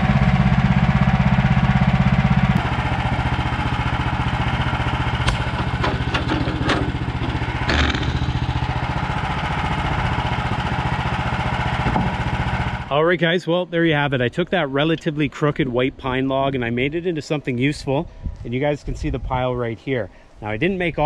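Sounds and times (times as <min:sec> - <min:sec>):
sawmill engine running: 0:00.0 - 0:17.5.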